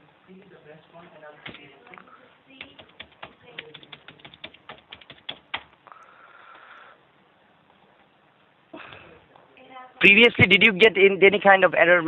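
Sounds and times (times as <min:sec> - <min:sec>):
keyboard typing: 0:02.6 - 0:05.8.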